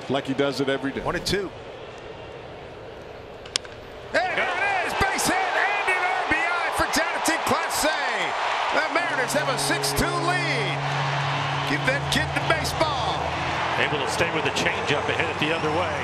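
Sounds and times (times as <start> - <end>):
crowd cheering and shouting: 4.1 - 16.0.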